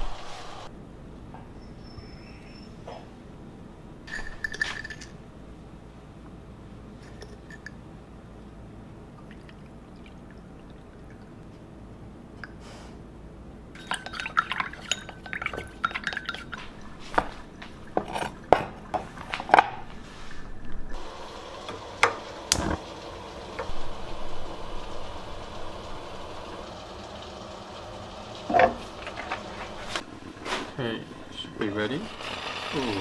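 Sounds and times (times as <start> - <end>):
stove gas hiss: 0.0 - 0.7, 19.1 - 33.0
metal utensil scraping ceramic bowl: 13.8 - 19.3
stove ignition clicks: 21.6 - 22.8.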